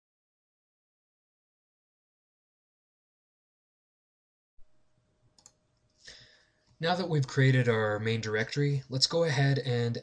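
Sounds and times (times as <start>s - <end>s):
computer mouse clicks: 5.4s - 5.9s.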